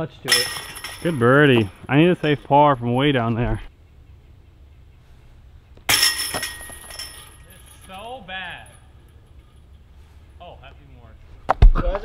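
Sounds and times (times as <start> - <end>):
disc striking basket chains: 0.0 - 3.1, 5.9 - 9.8.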